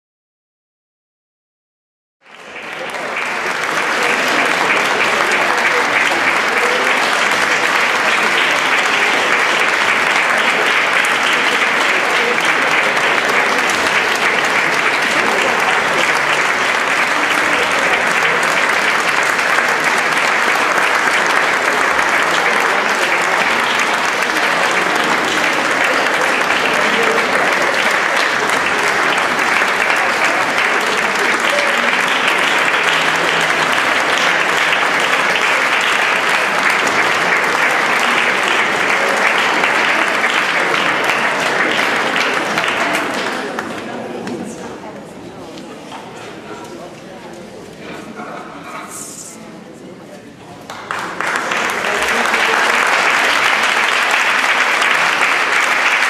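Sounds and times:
audience applauding: 2.2s - 44.8s, 50.6s - 56.0s.

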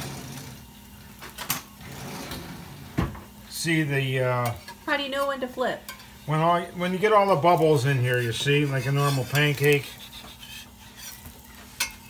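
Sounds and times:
batter sizzling on griddle: 0.0s - 12.0s.

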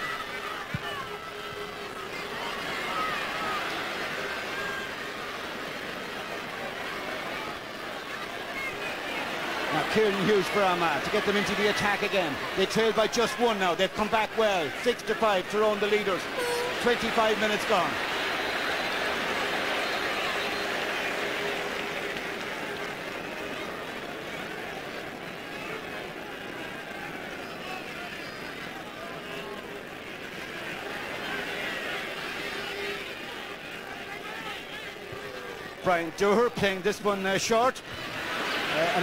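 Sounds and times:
crowd shouts: 0.0s - 39.0s
stadium crowd din: 0.0s - 39.0s.

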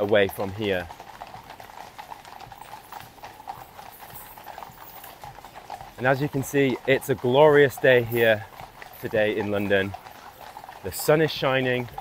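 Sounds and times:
horse hooves on paved road: 0.0s - 12.0s.

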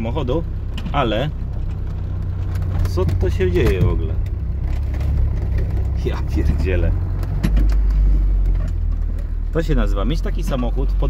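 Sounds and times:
diesel engine droning: 0.0s - 11.0s
body knocks and rattles: 0.7s - 9.6s.

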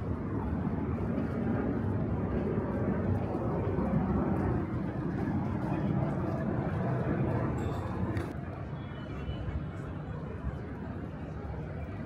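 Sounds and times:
road traffic rumble: 0.0s - 8.8s.

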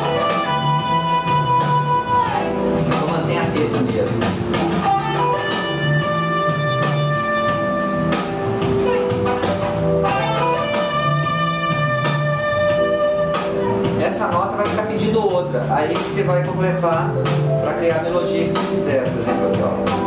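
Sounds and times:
electric guitar melody: 0.0s - 15.6s, 17.1s - 20.0s.

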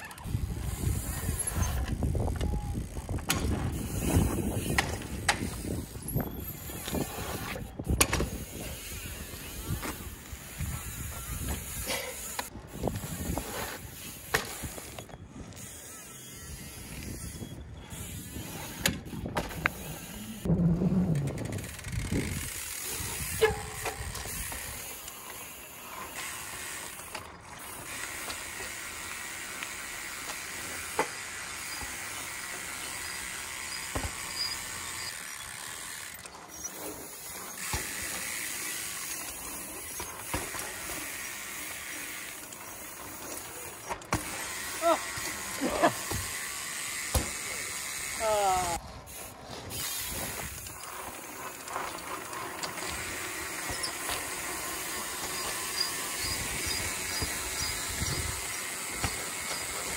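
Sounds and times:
wind rumble on microphone: 0.2s - 11.8s, 20.4s - 24.8s.

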